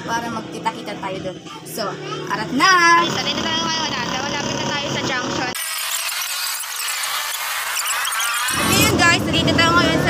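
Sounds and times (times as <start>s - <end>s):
woman speaking: 0.0s - 5.6s, 8.6s - 10.0s
thin high-pitched voices: 1.3s - 10.0s.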